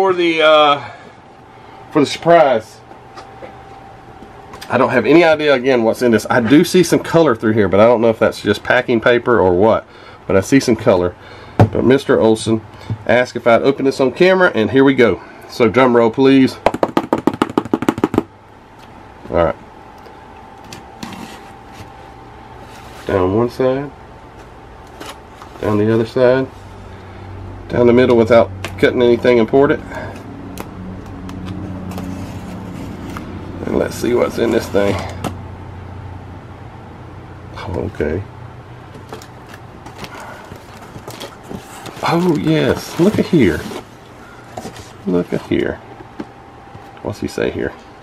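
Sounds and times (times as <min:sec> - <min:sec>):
faint steady hum: 0:00.0 - 0:48.0
cardboard box handled on table: 0:39.0 - 0:43.9
bubble wrap crinkling: 0:39.0 - 0:45.0.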